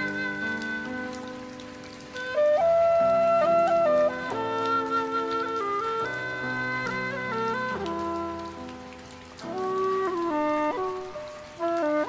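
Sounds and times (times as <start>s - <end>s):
bamboo flute melody: 0.0s - 12.0s
soft backing track: 0.0s - 12.0s.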